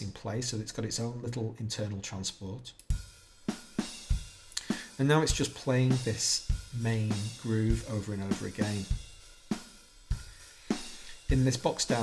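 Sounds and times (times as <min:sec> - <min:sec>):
hi-hat and cymbal wash: 0:02.9 - 0:12.0.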